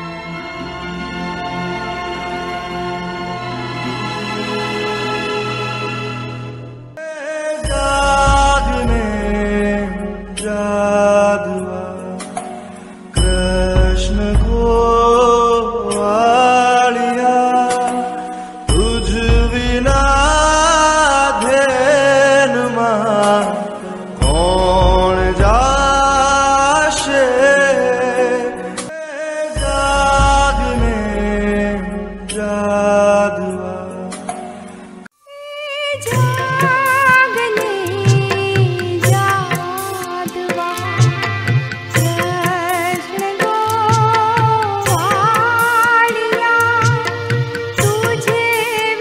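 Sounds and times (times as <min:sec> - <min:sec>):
devotional chant over music: 0:07.0 - 0:34.8.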